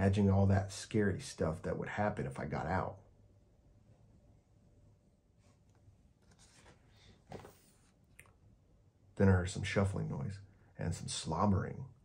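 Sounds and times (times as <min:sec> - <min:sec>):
book page turning: 0:05.4 - 0:08.0.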